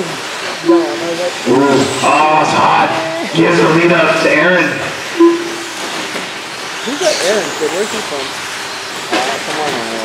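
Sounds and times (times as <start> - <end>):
short loud steady tone: 5.1 - 5.9.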